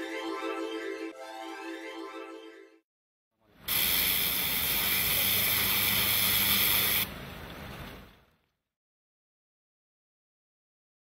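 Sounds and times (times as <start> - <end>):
pressure washer jet hissing: 3.7 - 7.1.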